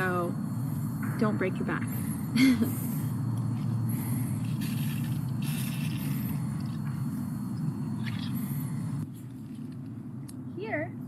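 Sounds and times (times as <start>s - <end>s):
low outdoor rumble: 0.0s - 11.0s
pump sprayer hissing: 1.2s - 9.0s.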